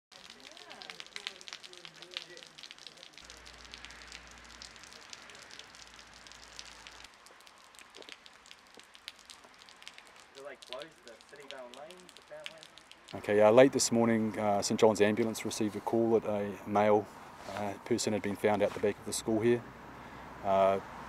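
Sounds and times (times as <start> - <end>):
rain drops ticking: 0.1 - 16.8.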